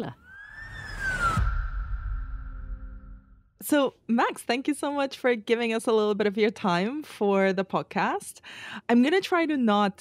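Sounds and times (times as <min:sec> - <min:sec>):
whoosh with siren-like tone: 0:00.2 - 0:03.4
low boom: 0:00.4 - 0:03.4.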